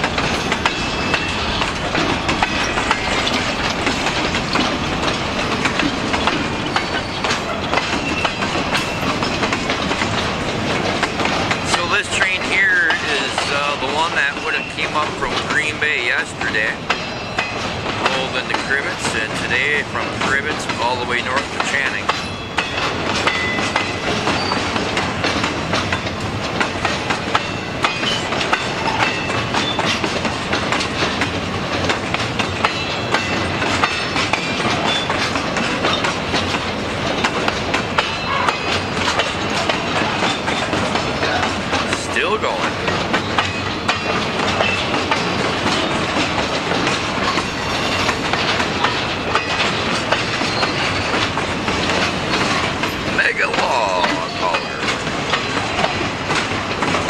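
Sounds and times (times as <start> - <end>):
freight train rumble and rattle: 0.0 - 57.0
wheels clacking over rail joints: 0.0 - 57.0.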